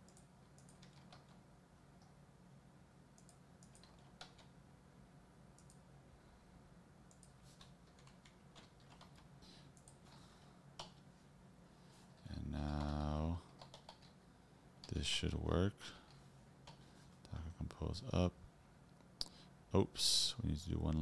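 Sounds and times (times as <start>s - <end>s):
keyboard keystrokes and clicks: 0.0s - 1.4s, 3.2s - 4.6s, 5.6s - 5.8s, 7.1s - 10.0s, 12.7s - 14.2s
low steady hum: 0.0s - 21.0s.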